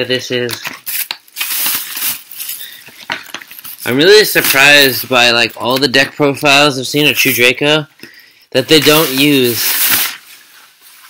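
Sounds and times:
foil wrappers crinkling: 0.5s - 5.8s, 8.7s - 11.0s.

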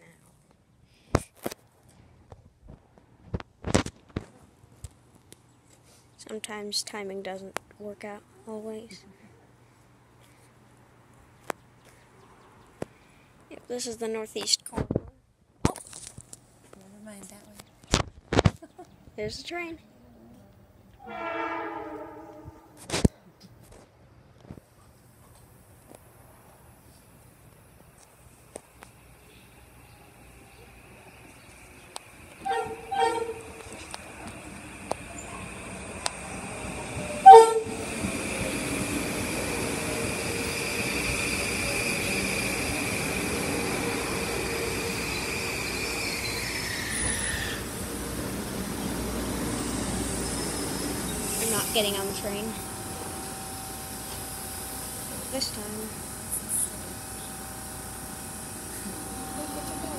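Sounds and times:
train horn blasts: 21.0s - 22.8s, 32.4s - 33.7s, 37.2s - 37.8s
steady high whine: 21.0s - 22.9s, 27.6s - 59.9s
train running noise: 21.0s - 22.9s, 27.7s - 59.9s.

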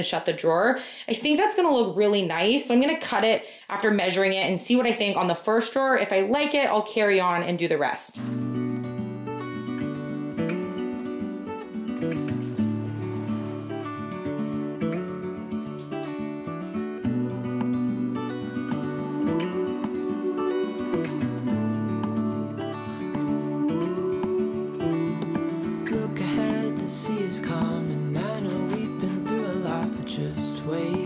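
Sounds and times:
strummed acoustic guitar music: 8.2s - 31.0s.

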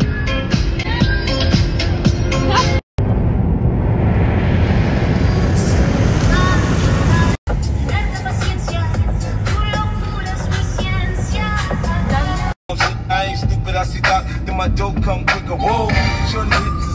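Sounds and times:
music with a beat: 0.0s - 2.8s, 7.5s - 16.9s
road and wind noise in car: 2.5s - 10.4s.

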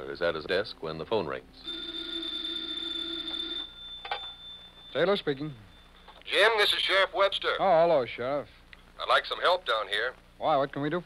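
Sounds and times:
telephone bell ringing: 1.6s - 6.2s.

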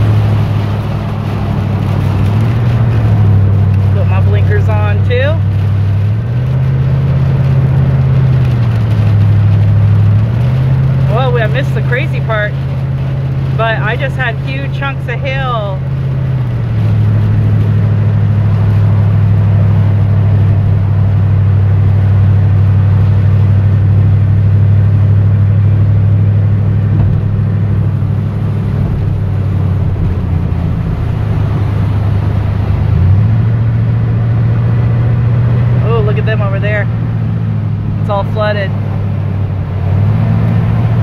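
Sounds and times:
rain and water spray: 0.0s - 41.0s
truck engine and tyres drone: 0.0s - 41.0s.

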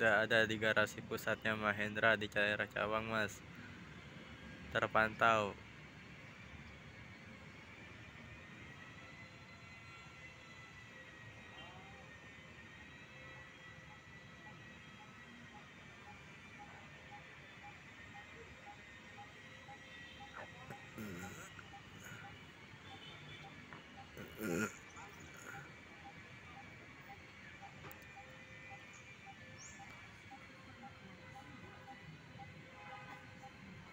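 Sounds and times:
faint outdoor background noise: 0.0s - 33.9s
thin steady tones: 0.0s - 33.9s
faint evenly spaced beeps: 13.8s - 33.9s.

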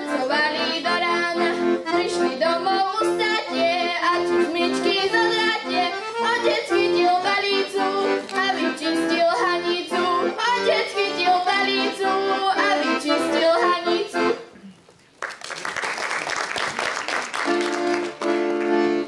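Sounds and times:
girl singing folk song: 0.0s - 14.4s
accordion bass and chords: 0.0s - 14.6s, 17.4s - 19.0s.

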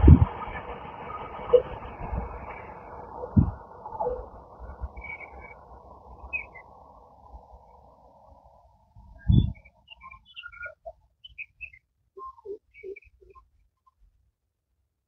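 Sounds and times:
passenger train running: 0.0s - 10.8s
birds chirping: 0.0s - 13.9s.

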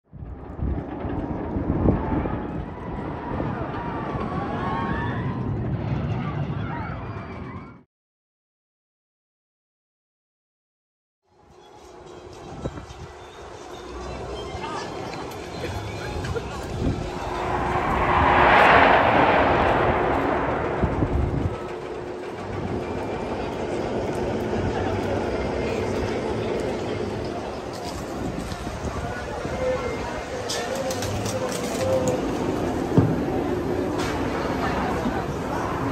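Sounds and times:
roller coaster rumbling on track: 0.2s - 7.8s, 12.2s - 35.9s
park background noise: 24.6s - 35.9s.

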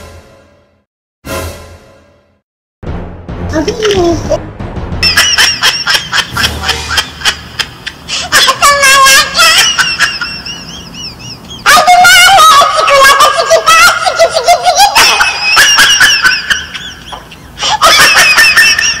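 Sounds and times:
high-pitched laughter: 5.0s - 19.0s.

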